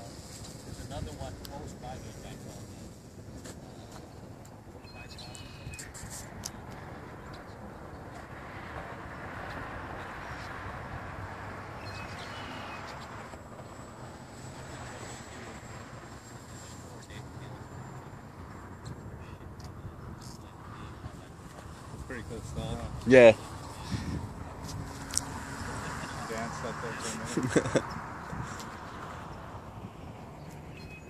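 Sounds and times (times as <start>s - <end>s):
outdoor wind: 0.0s - 31.0s.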